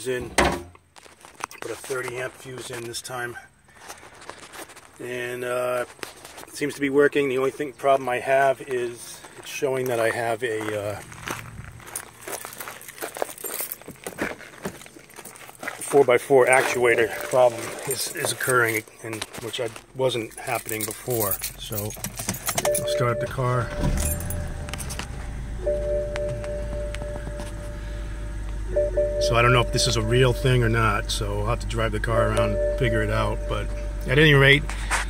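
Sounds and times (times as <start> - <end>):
footsteps on gravel: 0.8 - 21.4
car engine idling: 16.2 - 18.8, 20.2 - 35.0
dashboard warning tone: 16.3 - 18.6, 22.4 - 34.9.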